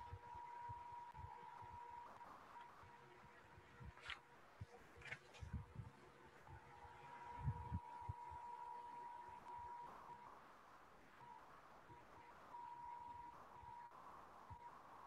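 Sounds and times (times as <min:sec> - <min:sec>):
faint high hum: 0:00.0 - 0:15.0.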